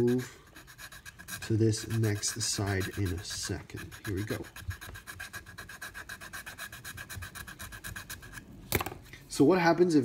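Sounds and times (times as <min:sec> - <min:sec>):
file rasping bamboo: 0:00.0 - 0:08.4.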